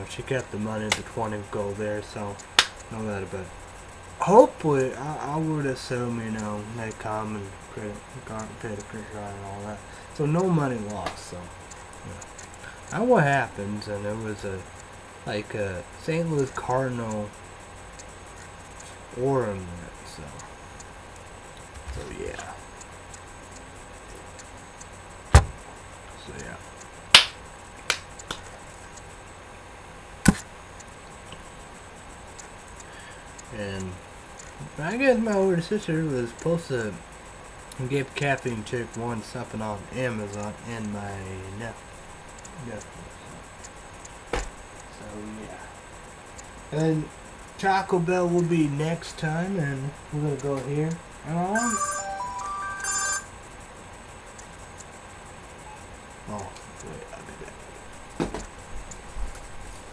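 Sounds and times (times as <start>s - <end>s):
low steady room noise: 0.0s - 59.9s
sharp clicks: 0.4s - 1.2s, 2.3s - 3.0s, 6.4s - 7.0s, 10.3s - 13.0s, 16.4s - 19.0s, 20.2s - 29.2s, 30.2s - 34.7s, 41.7s - 44.9s, 45.9s - 47.5s, 50.4s - 59.9s
electronic beeping melody: 51.5s - 53.3s.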